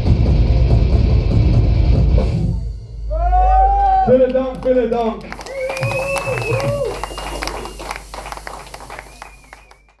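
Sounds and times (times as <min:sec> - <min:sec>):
audience clapping: 0:03.8 - 0:10.0
thin high whistle: 0:05.4 - 0:10.0.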